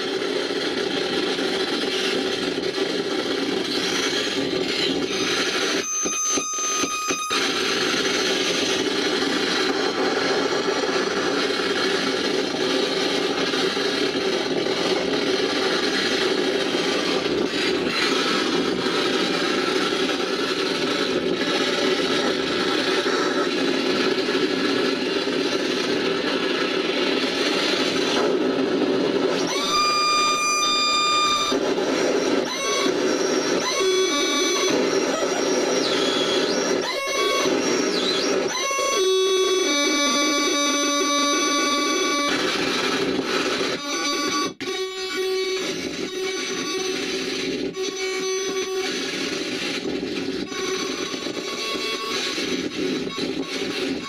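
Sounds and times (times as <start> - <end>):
harsh electronic noise: 0.0 - 54.0
whining feedback tone: 0.0 - 54.0.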